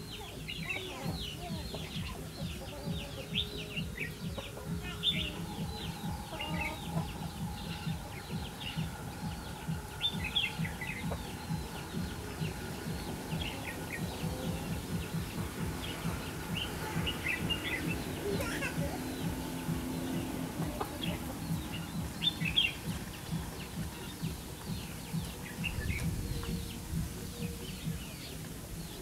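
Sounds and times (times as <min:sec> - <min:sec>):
birds chirping: 0:00.0 - 0:29.0
low pulsing background: 0:00.0 - 0:29.0.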